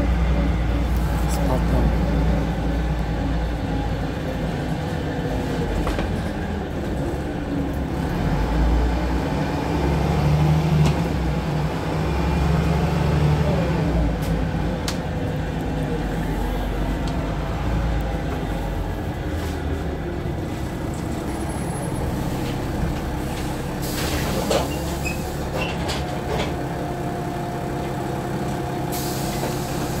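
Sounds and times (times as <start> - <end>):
diesel engine droning: 0.0 - 30.0
compressed air hisses: 28.9 - 30.0.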